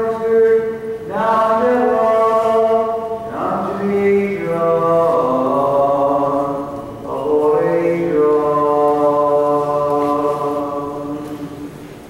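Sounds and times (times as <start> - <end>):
voices chanting slow notes: 0.0 - 11.8.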